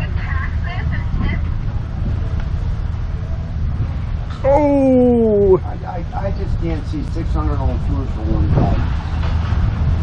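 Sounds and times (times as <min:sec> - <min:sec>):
low outdoor rumble: 0:00.0 - 0:10.0.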